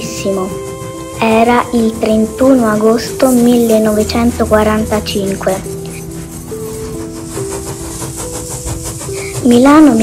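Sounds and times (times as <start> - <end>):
music with long held notes: 0.0 - 10.0
train clattering on rails: 0.0 - 10.0.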